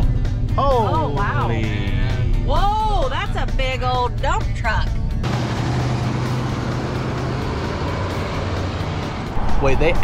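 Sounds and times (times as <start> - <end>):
low engine hum: 0.0 - 10.0.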